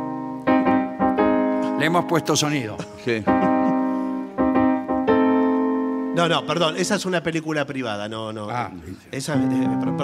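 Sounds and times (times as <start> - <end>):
piano chords ringing: 0.0 - 8.5, 9.2 - 10.0.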